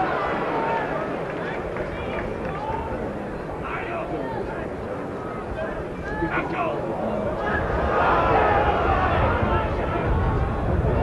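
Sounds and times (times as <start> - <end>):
background noise with low rumble: 0.0 - 11.0
people talking indistinctly: 1.0 - 10.8.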